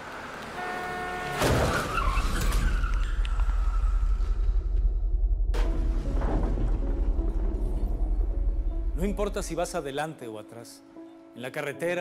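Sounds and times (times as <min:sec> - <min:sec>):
horn-like blare: 0:00.6 - 0:01.5
loud car collision: 0:01.3 - 0:02.8.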